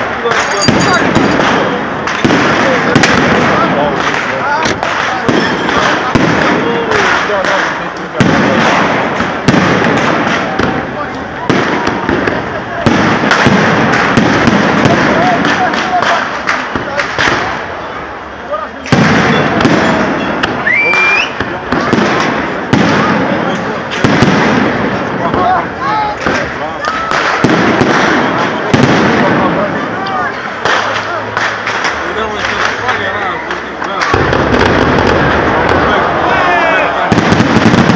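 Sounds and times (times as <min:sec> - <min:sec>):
firework shells bursting: 0:00.0 - 0:17.8, 0:30.5 - 0:36.3
crowd chatter: 0:00.0 - 0:37.9
firework crackle: 0:00.0 - 0:37.9.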